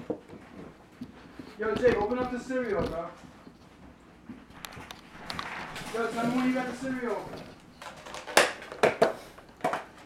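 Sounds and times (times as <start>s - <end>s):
objects clicking and knocking: 4.6s - 10.0s.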